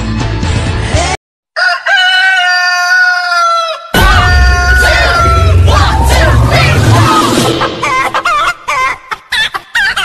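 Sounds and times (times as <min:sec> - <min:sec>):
dance music beat: 0:04.0 - 0:08.6.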